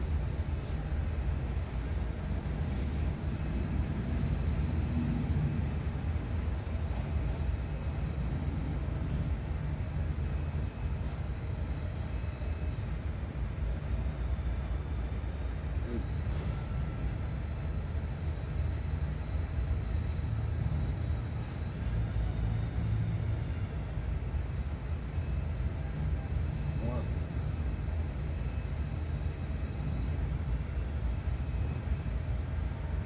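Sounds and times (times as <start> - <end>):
low outdoor rumble: 0.0 - 33.0.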